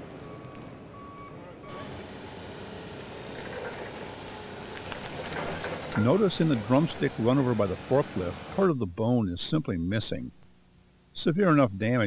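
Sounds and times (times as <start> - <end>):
forklift engine rumble: 0.0 - 8.6.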